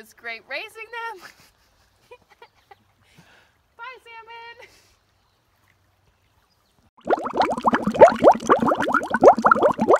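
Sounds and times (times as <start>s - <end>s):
water bubbling plops: 7.0s - 9.9s.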